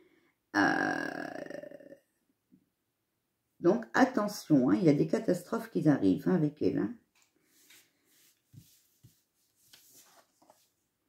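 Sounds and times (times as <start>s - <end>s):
woman's long wordless vocal sound: 0.6s - 2.0s
woman speaking: 3.6s - 7.0s.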